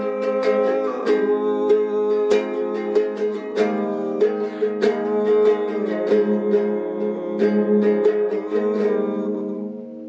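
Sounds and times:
classical guitar playing: 0.0 - 10.0.

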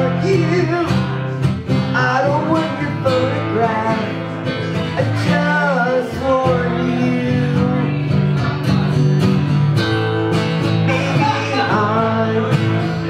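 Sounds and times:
acoustic guitar strumming: 0.0 - 13.0.

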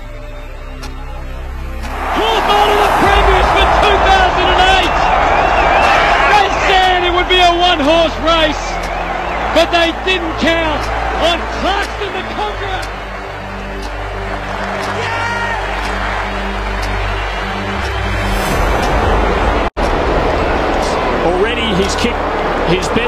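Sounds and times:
background music: 0.0 - 23.0
stadium crowd cheering: 1.8 - 23.0
voices shouting: 1.8 - 23.0.

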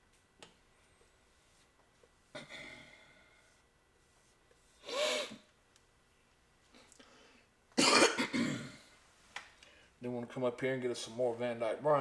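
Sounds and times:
man clearing his throat: 7.8 - 8.9
man coughing: 7.8 - 8.9.

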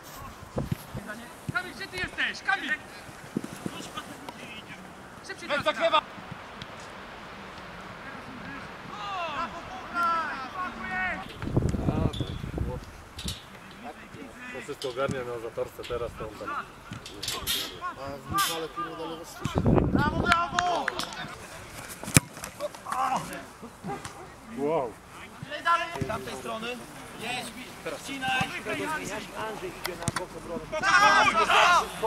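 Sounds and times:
men shouting and calling out: 0.1 - 6.2, 7.3 - 12.9, 13.5 - 32.0
people shouting: 8.9 - 11.3, 30.7 - 32.0.

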